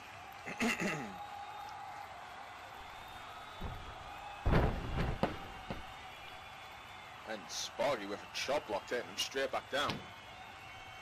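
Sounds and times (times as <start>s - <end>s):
heavy body slam: 3.6s - 5.9s
soft thud: 4.5s - 5.8s.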